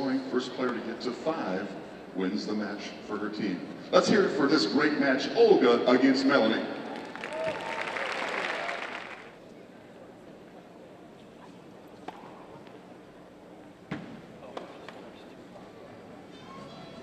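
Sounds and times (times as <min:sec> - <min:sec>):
crowd applauding and cheering: 0:06.8 - 0:09.4.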